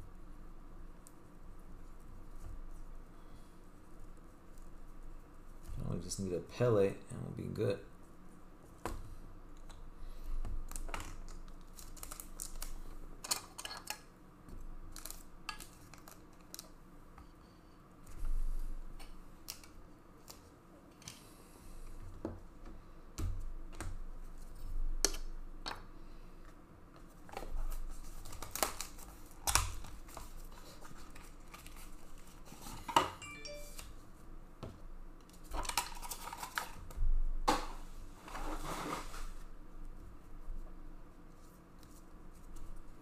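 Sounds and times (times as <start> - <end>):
cards rustling and clicking: 10.6 - 14.1, 27.2 - 32.9, 35.2 - 36.9
plastic card sleeves rustling: 10.7 - 12.8.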